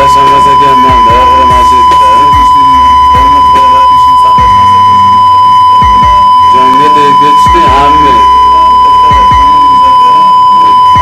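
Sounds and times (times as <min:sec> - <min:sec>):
background music with bass drum: 0:00.0 - 0:11.0
steady high-pitched beep tone: 0:00.0 - 0:11.0.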